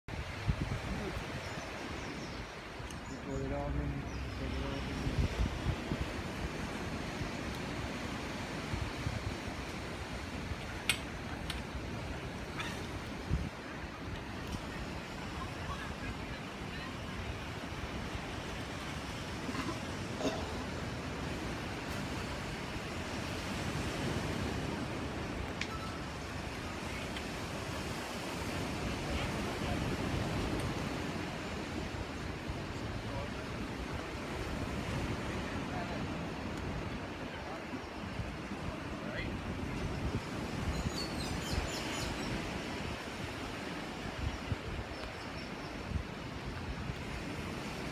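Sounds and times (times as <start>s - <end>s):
wind: 0.0s - 47.9s
beach surf: 0.1s - 47.9s.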